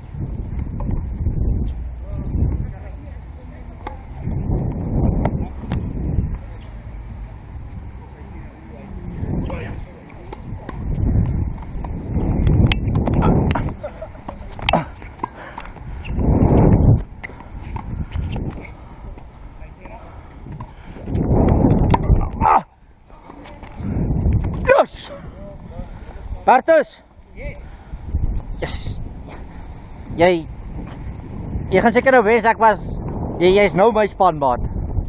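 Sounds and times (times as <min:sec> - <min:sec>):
wind buffeting microphone: 0:00.0 - 0:35.0
tennis ball striking racket: 0:11.6 - 0:16.2.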